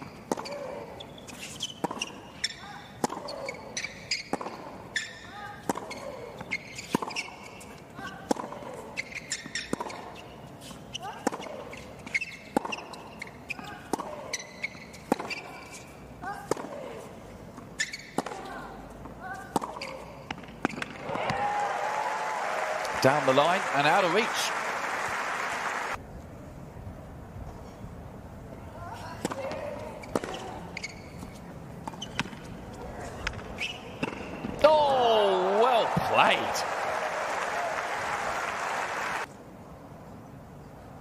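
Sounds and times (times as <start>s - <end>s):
tennis ball hit by rackets: 1.8s - 2.2s, 3.0s - 3.6s, 4.2s - 7.4s, 12.5s - 12.9s, 13.6s - 15.6s, 16.4s - 16.9s, 17.8s - 18.6s, 19.4s - 21.4s, 29.2s - 30.5s, 31.8s - 32.5s, 33.2s - 34.6s
crowd applause and cheering: 21.0s - 26.0s, 34.9s - 39.3s.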